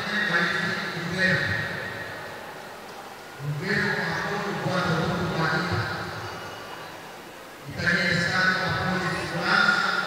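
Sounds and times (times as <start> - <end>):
man speaking into microphone: 0.0 - 2.0, 3.4 - 6.2, 7.6 - 10.0.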